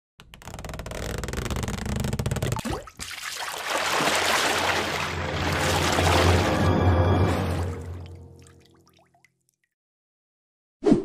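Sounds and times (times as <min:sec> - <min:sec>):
intro music: 0:05.0 - 0:08.6.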